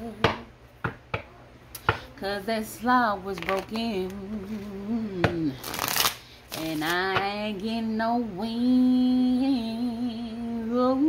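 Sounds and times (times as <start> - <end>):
cards shuffling: 3.4 - 4.7, 5.6 - 7.0.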